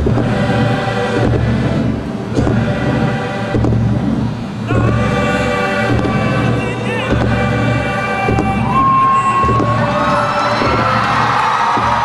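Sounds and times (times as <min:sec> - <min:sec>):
marching band playing: 0:00.0 - 0:12.0
sharp percussion hits: 0:00.0 - 0:12.0.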